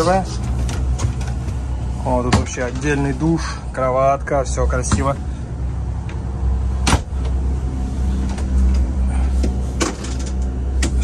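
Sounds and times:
low drone of boat machinery: 0.0 - 11.0.

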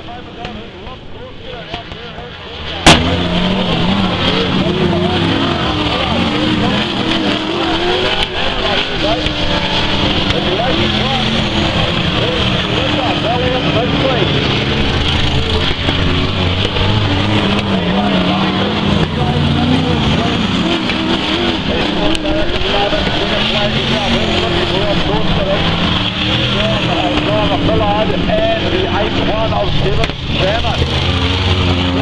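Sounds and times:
racing car engines: 0.0 - 32.0.

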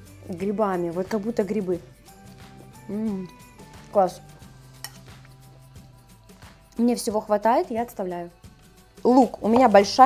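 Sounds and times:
fork clinking on plate: 4.8 - 5.3.

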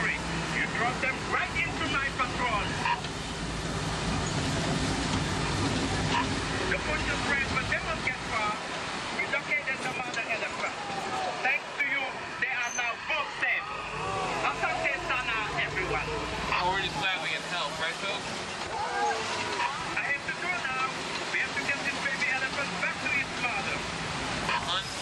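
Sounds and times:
truck engine low rumble: 0.0 - 18.7
passengers chatting: 0.0 - 25.0.

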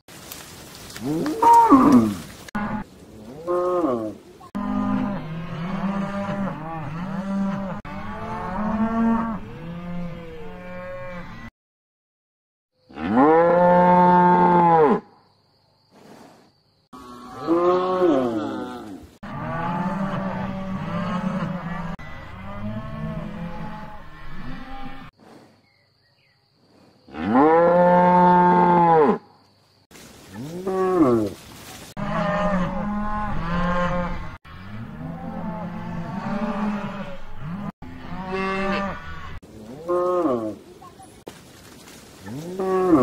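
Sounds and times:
cattle mooing: 17.0 - 25.1, 32.0 - 40.6, 42.3 - 43.0.

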